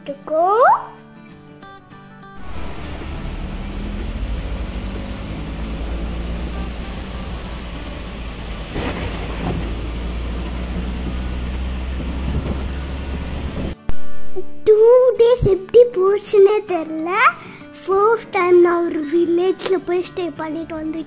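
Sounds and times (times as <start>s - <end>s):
car road noise on wet road: 2.4s - 13.8s.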